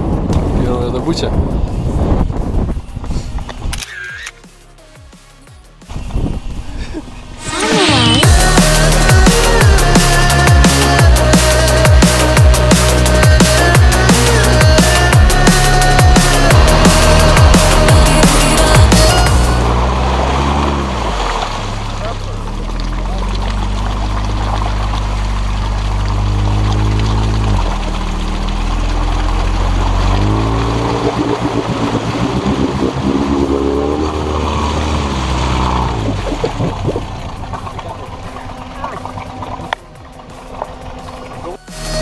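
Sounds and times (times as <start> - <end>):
vehicle engine revving: 5.9 - 42.0
tyres splashing through water: 7.3 - 41.7.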